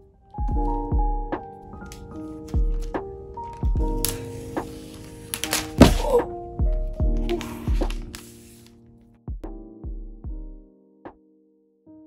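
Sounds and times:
background music: 0:00.0 - 0:12.0
laptop case knock: 0:05.7 - 0:06.2
papery rustle of sheet: 0:07.3 - 0:08.8.

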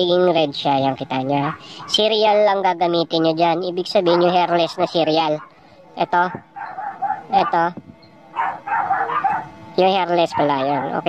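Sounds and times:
dog barking: 0:01.4 - 0:02.1, 0:04.0 - 0:05.6, 0:06.2 - 0:07.7, 0:08.4 - 0:09.5, 0:10.2 - 0:11.0.

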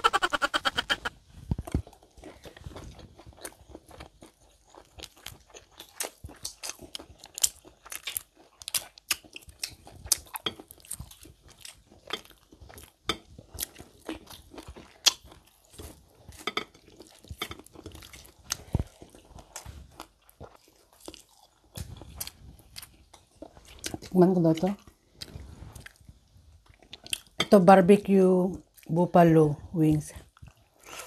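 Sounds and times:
wet chewing and crunching: 0:00.0 - 0:27.5, 0:28.6 - 0:28.9, 0:30.2 - 0:31.0.

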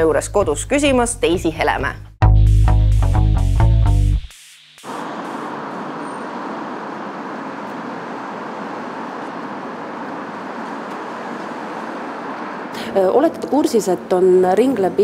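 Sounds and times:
city street traffic: 0:04.6 - 0:15.0.

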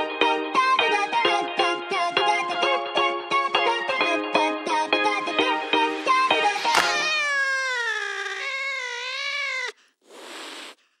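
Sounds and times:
long meow-like call: 0:06.7 - 0:09.7
short hiss: 0:09.6 - 0:10.9.

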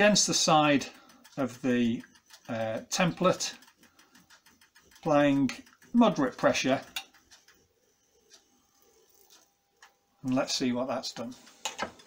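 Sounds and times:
faint ticks: 0:03.2 - 0:10.0.

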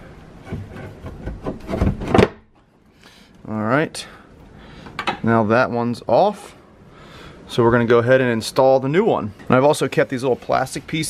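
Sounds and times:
plastic scraping against metal: 0:00.4 - 0:02.4.

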